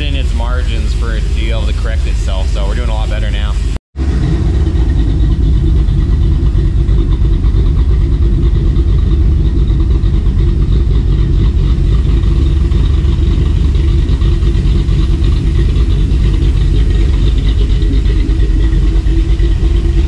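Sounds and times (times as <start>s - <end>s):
car engine idling: 0.0s - 20.0s.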